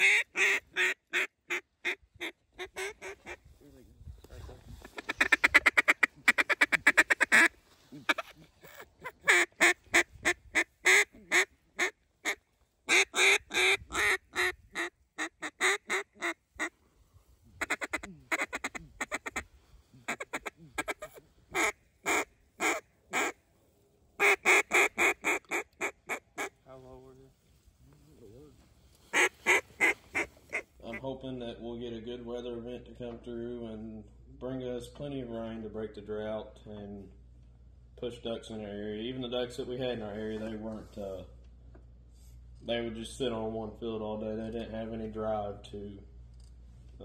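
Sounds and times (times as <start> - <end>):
duck call quacks: 0.0 - 3.4, 4.9 - 16.7, 17.6 - 23.4, 24.2 - 26.6, 29.1 - 31.0.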